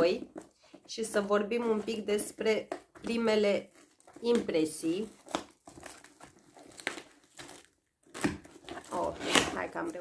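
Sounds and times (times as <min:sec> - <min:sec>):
packaging crinkling and tearing: 0:01.9 - 0:10.0.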